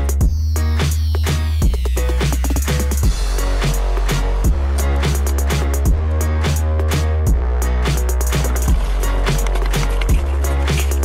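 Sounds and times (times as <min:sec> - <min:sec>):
electronic music with heavy bass: 0:00.0 - 0:11.0.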